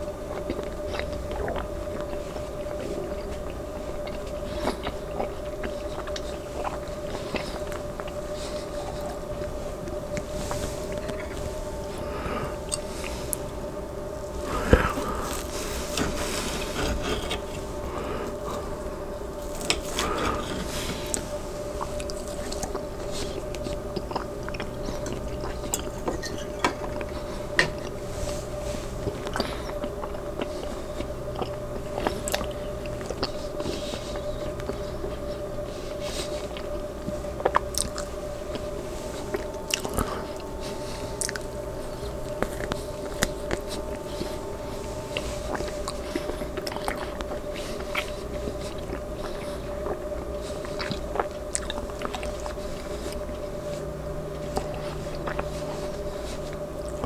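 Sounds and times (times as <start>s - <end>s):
close chewing: 0.0s - 57.0s
steady hum: 0.0s - 57.0s.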